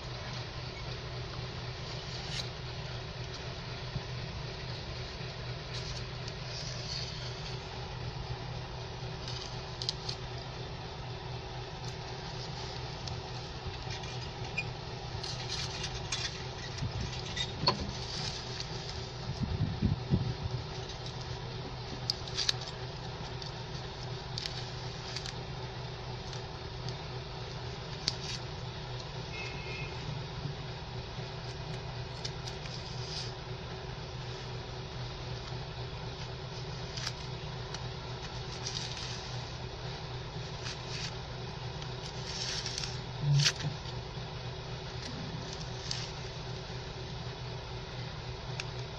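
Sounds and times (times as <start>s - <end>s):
low hum: 0.0s - 48.9s
knife grating through soil: 5.6s - 8.0s, 31.4s - 33.6s, 38.2s - 43.7s.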